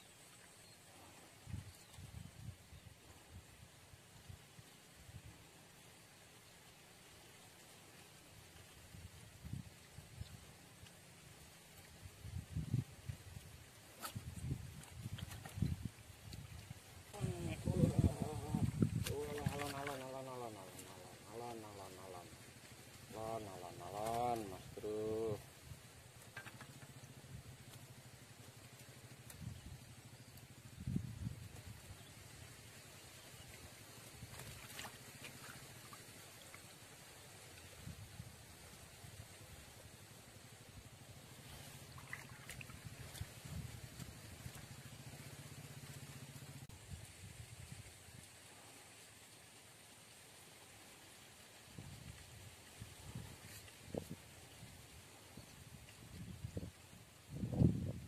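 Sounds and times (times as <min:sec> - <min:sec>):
person's voice: 0:17.2 - 0:22.4, 0:23.1 - 0:25.4.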